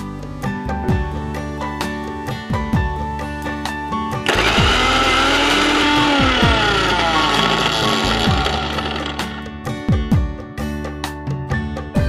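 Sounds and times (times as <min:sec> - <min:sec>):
background music with plucked guitar: 0:00.0 - 0:12.0
mixer grinder running: 0:04.2 - 0:09.6.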